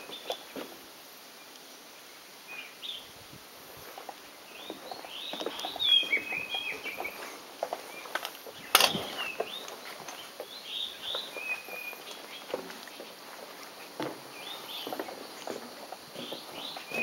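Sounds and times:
birds chirping: 0:00.0 - 0:00.7, 0:01.4 - 0:17.0
steady outdoor background: 0:00.0 - 0:17.0.

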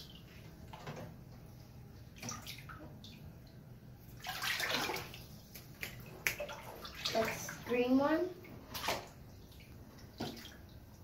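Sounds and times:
bathwater splashing: 0:02.1 - 0:11.0.

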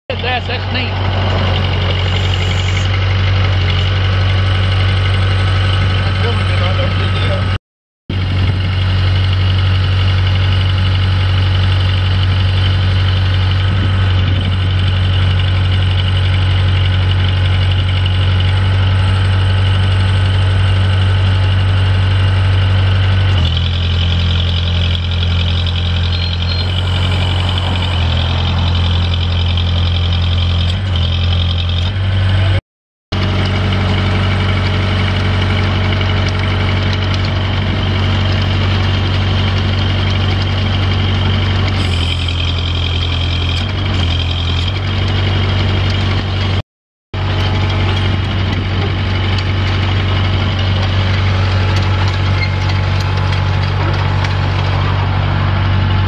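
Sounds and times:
diesel engine running: 0:00.1 - 0:46.6, 0:47.2 - 0:56.0.

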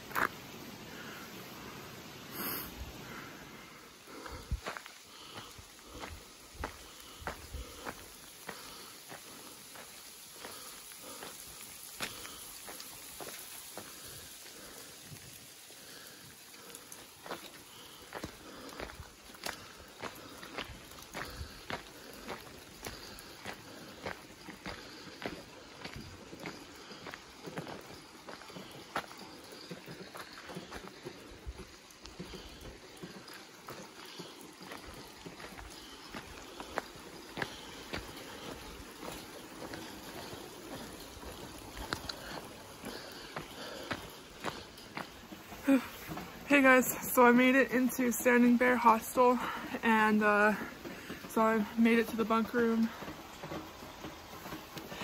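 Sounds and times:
footsteps on wet gravel: 0:00.0 - 0:01.3, 0:02.0 - 0:55.0
rain pattering: 0:00.0 - 0:55.0.

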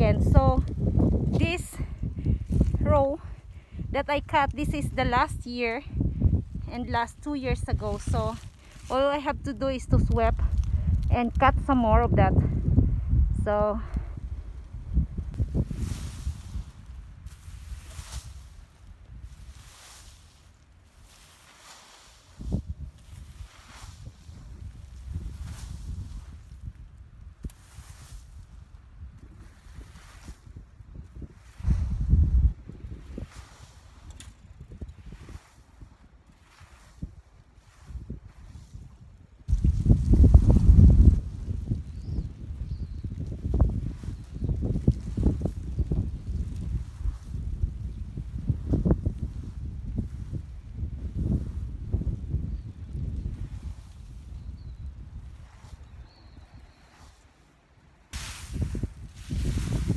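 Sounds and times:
wind buffeting microphone: 0:00.0 - 0:57.3, 0:57.9 - 0:59.9
rake scratching through straw: 0:19.3 - 0:24.3, 0:58.2 - 0:59.9.

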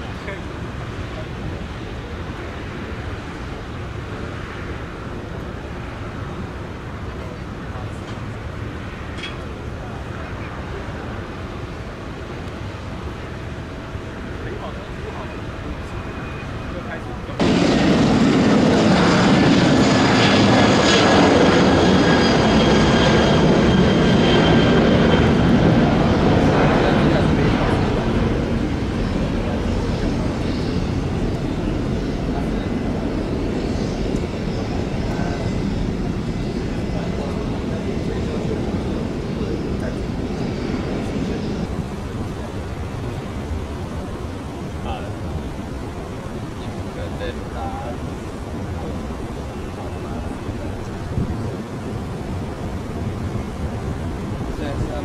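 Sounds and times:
jet engines roaring with whine: 0:00.0 - 0:55.0.

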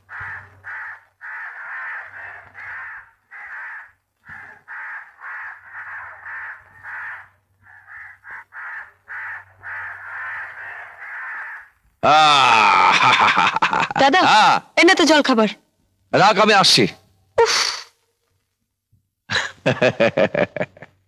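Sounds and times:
crows cawing: 0:00.0 - 0:13.8.

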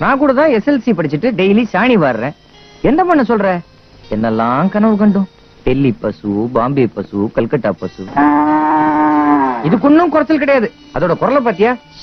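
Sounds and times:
cow mooing: 0:08.1 - 0:09.9.

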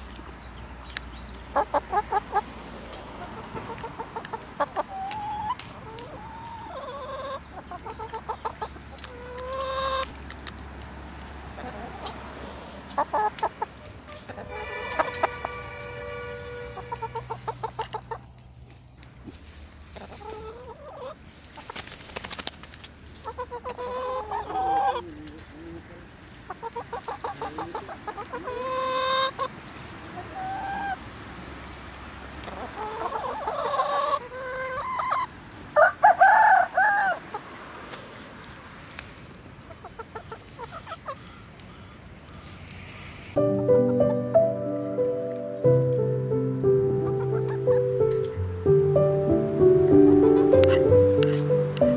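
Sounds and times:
chickens clucking: 0:00.0 - 0:44.5, 0:46.6 - 0:48.5
rooster crowing: 0:35.8 - 0:37.2.

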